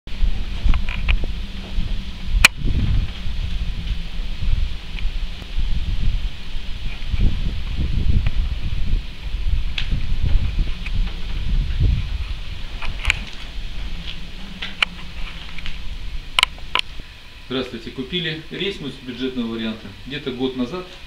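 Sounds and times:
microphone handling noise: 0:00.1 - 0:17.2
wind rumble: 0:00.1 - 0:19.3.

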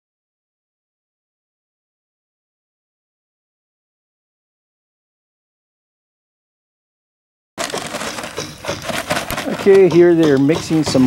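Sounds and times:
powder pouring: 0:07.6 - 0:10.1
paper sack rustling and crunching: 0:07.6 - 0:11.0.

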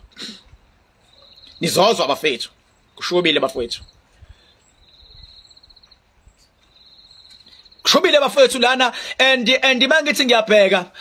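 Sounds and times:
cricket trilling: 0:01.0 - 0:08.0
man's loud voice: 0:07.9 - 0:11.0.

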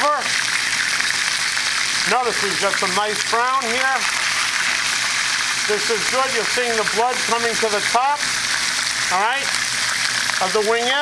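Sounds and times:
chicken sizzling in hot oil: 0:00.0 - 0:11.0.

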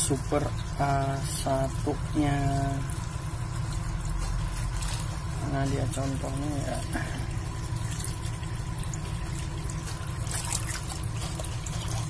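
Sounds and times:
faint trickling water: 0:00.0 - 0:12.0
low motor hum: 0:00.0 - 0:12.0.

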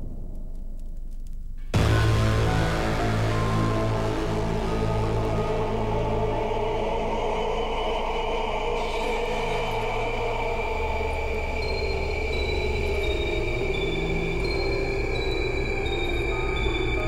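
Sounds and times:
steady high held tone: 0:01.7 - 0:17.0
low sustained drones: 0:01.8 - 0:17.0.

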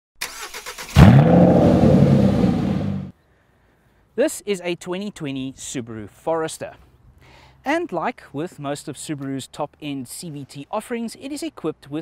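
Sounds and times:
car engine starter cranking: 0:00.2 - 0:01.4.

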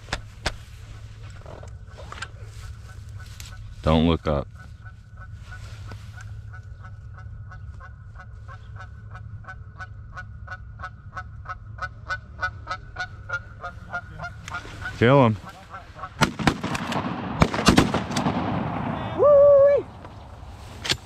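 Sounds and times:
geese honking: 0:02.4 - 0:16.4.

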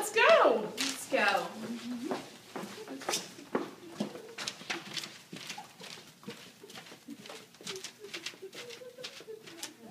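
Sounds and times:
footsteps on hard floor: 0:00.8 - 0:09.9.

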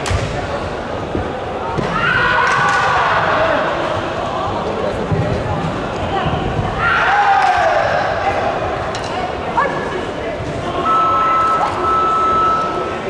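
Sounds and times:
voices and shouts in echoing hall: 0:00.0 - 0:13.0
long steady high tone: 0:10.7 - 0:13.0.

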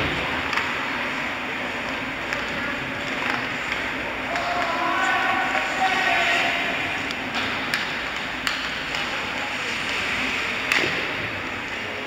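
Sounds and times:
sticks clacking on puck: 0:00.4 - 0:01.1, 0:01.8 - 0:11.2
skates scraping ice: 0:00.5 - 0:12.0.

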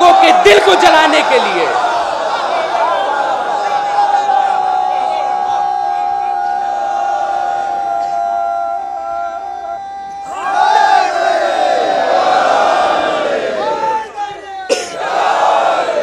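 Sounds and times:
large crowd shouting: 0:00.0 - 0:16.0
long steady held tone: 0:05.6 - 0:10.6.

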